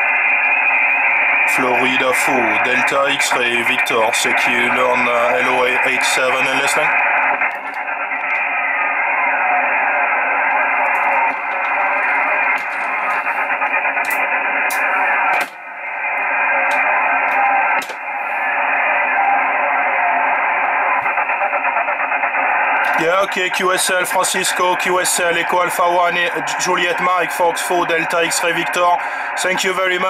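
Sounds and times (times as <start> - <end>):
radio hiss: 0.0 - 30.0
weak voice in radio noise: 0.0 - 30.0.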